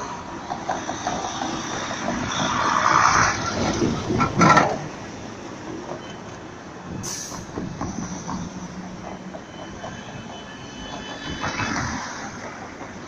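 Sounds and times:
tram wheels squealing on rails: 0.0s - 5.2s, 5.8s - 13.0s
cars passing: 0.0s - 13.0s.

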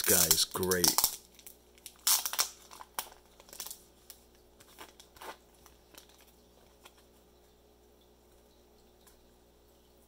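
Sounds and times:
plastic bag crinkling: 0.0s - 7.2s.

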